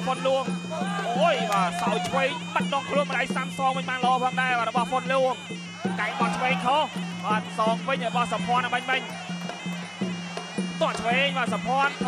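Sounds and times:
commentator speaking: 0.0 - 9.2, 10.8 - 12.0
buzzy reed oboe melody: 0.0 - 12.0.

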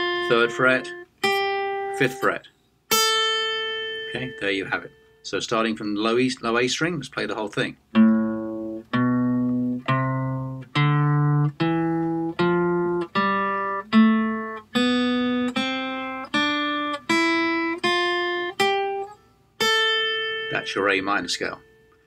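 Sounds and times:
acoustic guitar picked notes: 0.0 - 22.0.

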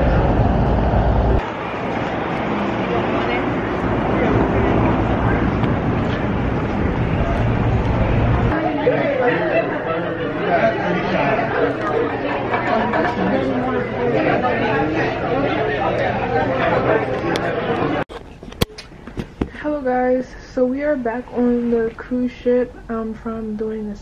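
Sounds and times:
heavy low rumble: 0.0 - 8.6
chatter of people talking: 2.4 - 18.1.

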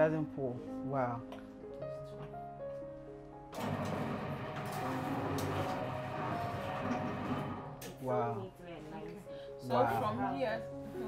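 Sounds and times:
can-sealing machine running: 3.5 - 8.0.

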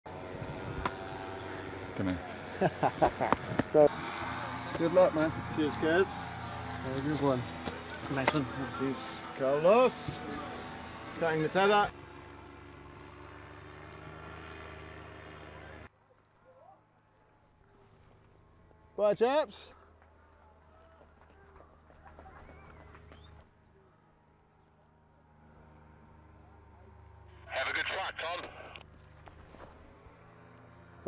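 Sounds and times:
low motor hum: 0.1 - 15.9.

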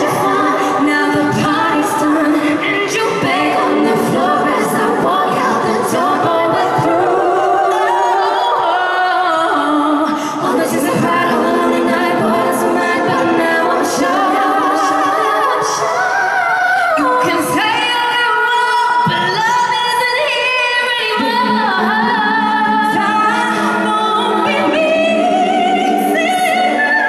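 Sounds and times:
women singing in harmony: 0.0 - 27.0.

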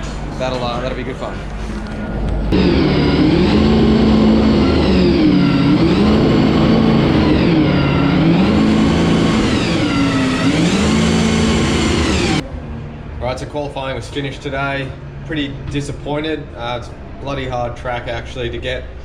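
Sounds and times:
race car engine revving: 2.5 - 12.4.

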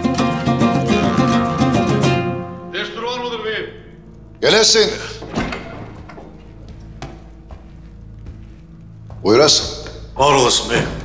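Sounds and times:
quiet background music: 0.0 - 11.0
footsteps thudding: 5.2 - 10.2.

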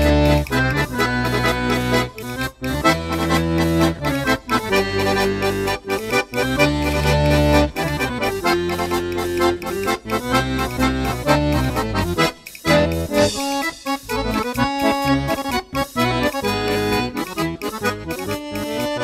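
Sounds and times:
accordion dance music: 0.0 - 19.0.

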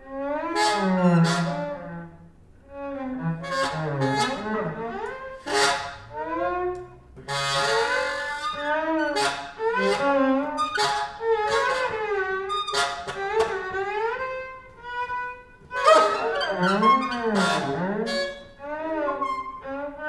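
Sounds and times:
violin improvising: 0.0 - 20.0
saxophone improvising: 7.2 - 13.5, 15.0 - 19.6.

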